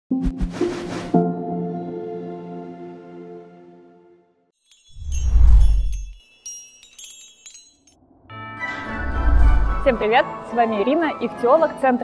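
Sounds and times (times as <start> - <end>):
sparkling chime tinkles: 4.6 - 8.0.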